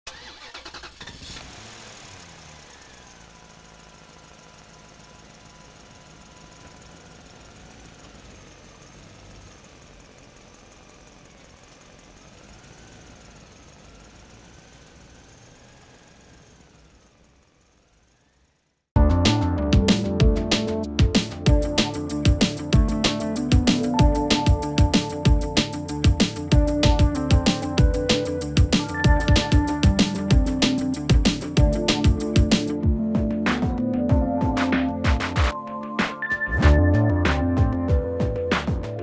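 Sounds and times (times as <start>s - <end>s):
car engine starting and running: 0.0s - 39.0s.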